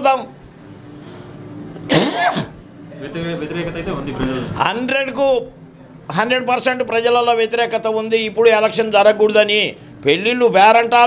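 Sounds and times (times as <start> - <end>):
man coughing: 1.9 - 2.6.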